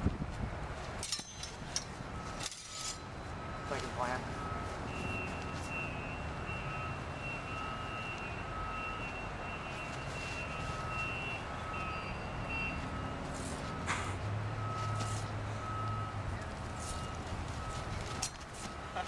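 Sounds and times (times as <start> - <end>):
vehicle reversing alarm beeping: 1.1 - 19.0.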